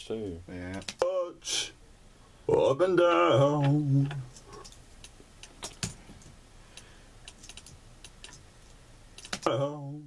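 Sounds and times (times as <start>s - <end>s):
typing on computer keyboard: 7.3s - 8.4s, 9.2s - 9.5s.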